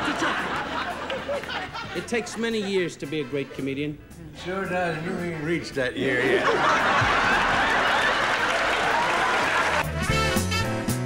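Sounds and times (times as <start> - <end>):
audience laughing: 0.0 - 4.2, 6.0 - 9.9
audience applauding: 6.6 - 10.0
swing music with brass: 9.5 - 11.0.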